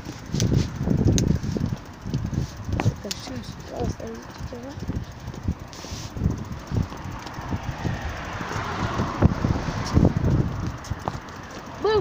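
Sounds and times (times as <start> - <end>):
wind buffeting microphone: 0.0 - 12.0
microphone handling noise: 0.2 - 3.1.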